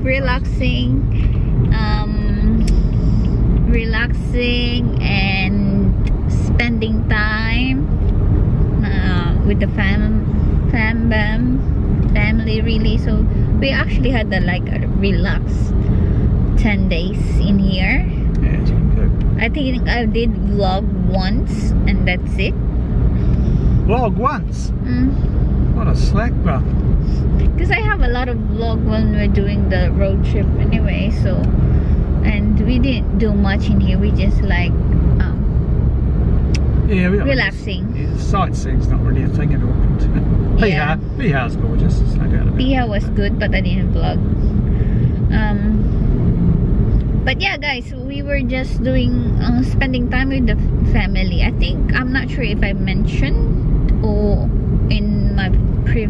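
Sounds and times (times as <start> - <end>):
person talking: 0.0 - 7.9, 8.8 - 15.7, 16.6 - 22.5, 23.9 - 25.2, 25.8 - 31.5, 32.2 - 35.4, 36.9 - 44.2, 45.3 - 45.9, 47.3 - 56.0
car road and engine noise: 0.0 - 56.0.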